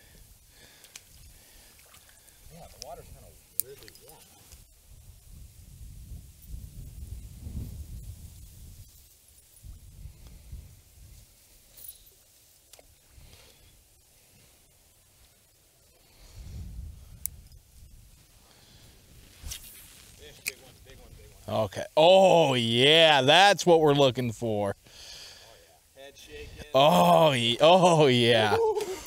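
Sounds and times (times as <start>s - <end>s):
faint clicks: 0.8s - 2.9s
wind gusting on microphone: 4.7s - 9.0s.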